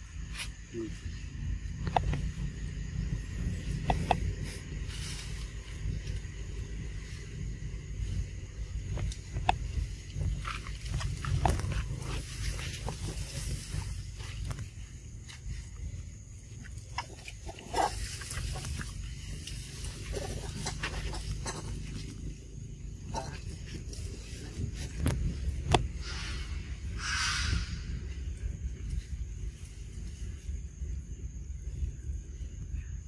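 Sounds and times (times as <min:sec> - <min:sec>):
steady low rumble: 0:00.0 - 0:33.0.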